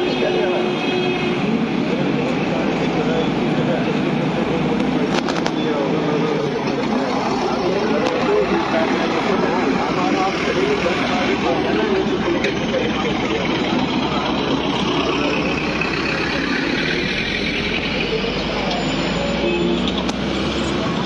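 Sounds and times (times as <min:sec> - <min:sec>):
murmur of voices: 0:00.0 - 0:21.0
vehicle engines running: 0:00.0 - 0:21.0.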